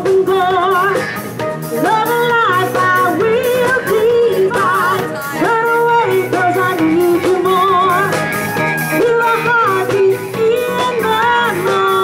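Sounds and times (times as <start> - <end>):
pop band playing: 0.0 - 12.0
woman singing with vibrato: 0.0 - 12.0.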